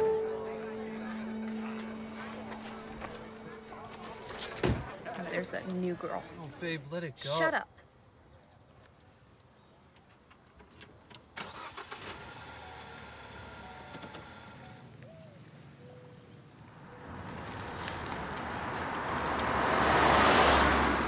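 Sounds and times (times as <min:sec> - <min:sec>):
car driving up: 0:16.7 - 0:21.0.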